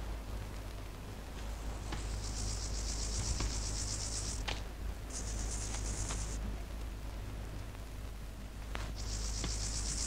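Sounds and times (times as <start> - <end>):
insect trilling: 2.1 - 4.4, 5.1 - 6.4, 9.0 - 10.0.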